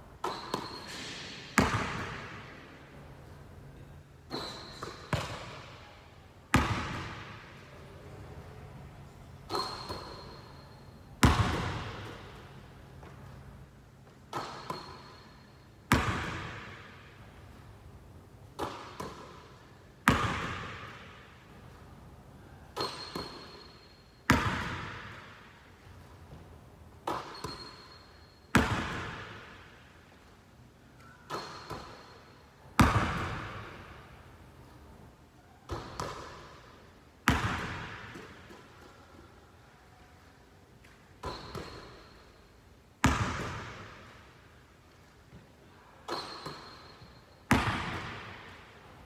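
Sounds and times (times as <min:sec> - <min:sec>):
basketball bouncing on gym floor: 0:00.2 - 0:02.6, 0:04.3 - 0:05.8, 0:06.5 - 0:07.6, 0:09.5 - 0:13.2, 0:14.3 - 0:15.2, 0:15.9 - 0:17.2, 0:18.6 - 0:21.4, 0:22.8 - 0:25.5, 0:27.0 - 0:29.7, 0:31.1 - 0:32.2, 0:32.8 - 0:34.1, 0:35.7 - 0:36.6, 0:37.2 - 0:38.9, 0:40.8 - 0:42.2, 0:43.0 - 0:44.2, 0:46.1 - 0:48.7.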